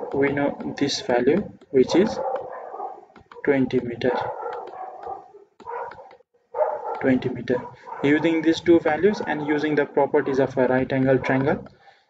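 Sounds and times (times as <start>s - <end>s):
dog barking: 0.0s - 0.8s, 1.8s - 9.5s, 10.2s - 10.5s, 11.2s - 11.6s.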